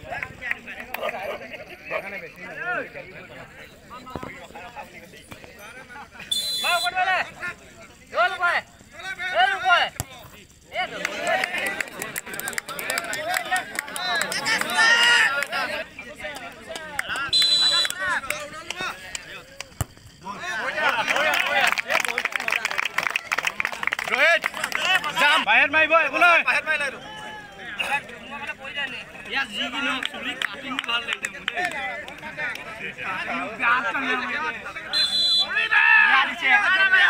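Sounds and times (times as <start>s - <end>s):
crowd talking and calling out: 0.0s - 37.0s
onlookers' voices: 0.0s - 37.0s.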